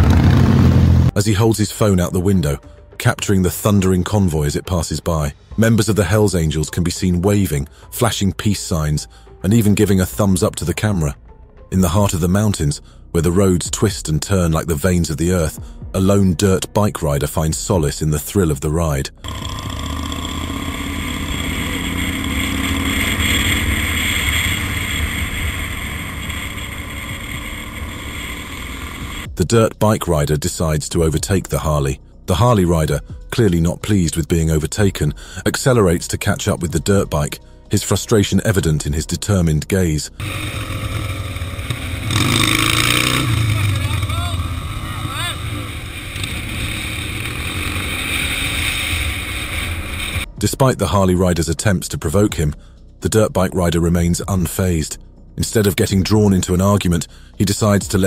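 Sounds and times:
motorcycle engine running: 0.0 - 1.2, 19.2 - 29.4, 40.2 - 50.3.

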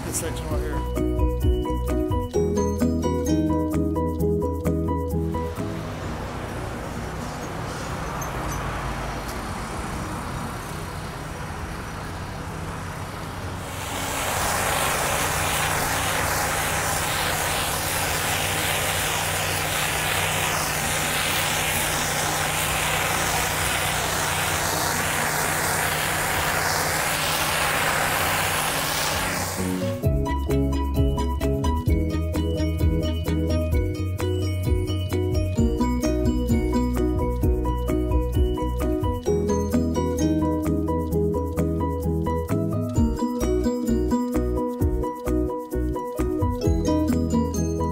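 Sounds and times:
pressure washer engine running: 5.4 - 30.2
water jet hissing on concrete: 5.5 - 30.0.

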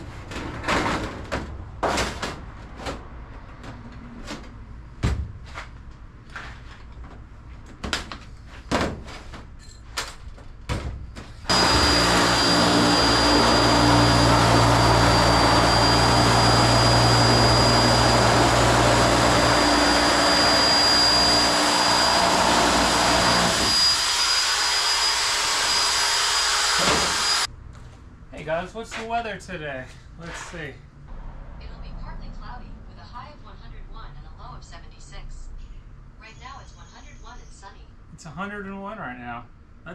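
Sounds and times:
electric metal shear whining: 11.5 - 27.5.

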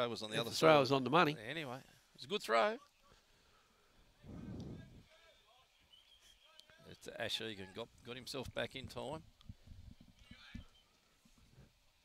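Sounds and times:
low rush of noise on microphone: 3.1 - 5.9, 6.7 - 12.0.

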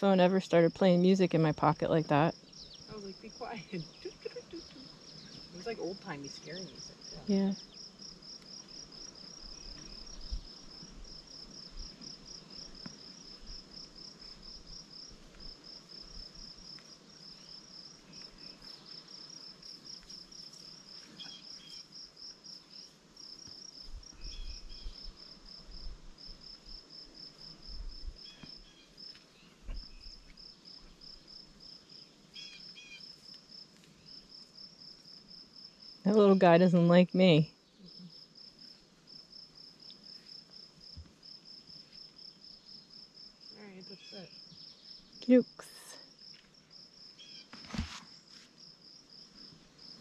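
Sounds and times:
insect chirping in rapid pulses: 2.2 - 50.0.

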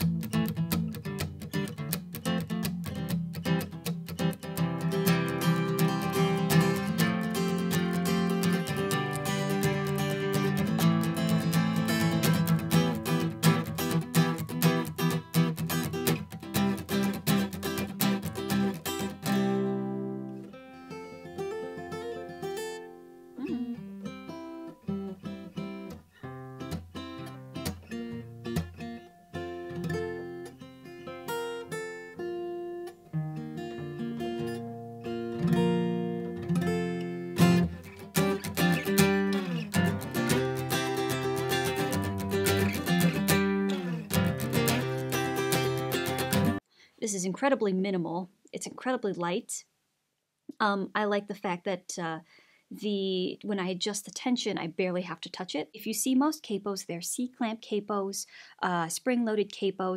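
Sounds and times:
acoustic guitar playing: 0.0 - 46.6.

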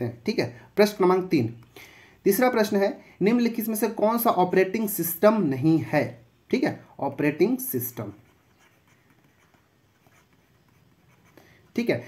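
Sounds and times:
stylus scratching and ticking: 7.3 - 12.0.

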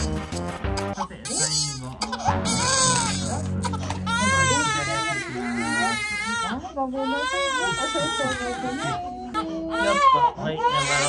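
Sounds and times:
baby crying hard: 1.2 - 11.0
baby catching breath: 3.6 - 4.1.

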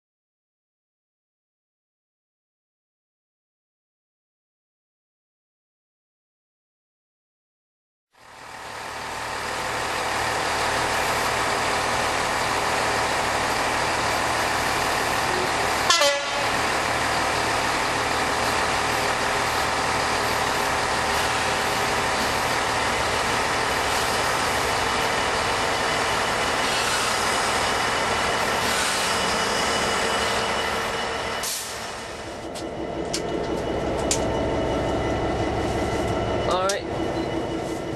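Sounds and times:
locomotive diesel engine running: 8.2 - 37.9
locomotive horn toot: 15.8 - 16.6.

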